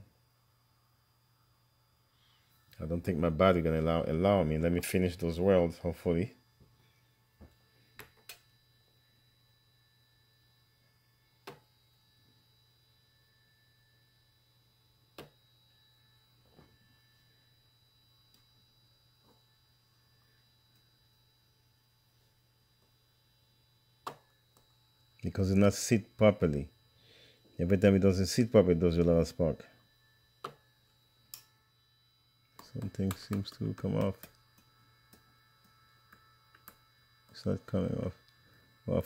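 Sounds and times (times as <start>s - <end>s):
faint low hum: 0.0s - 39.0s.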